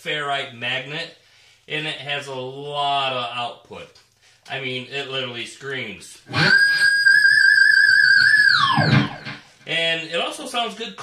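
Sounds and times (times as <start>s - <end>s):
overdriven electric guitar note: 6.3s - 9.5s.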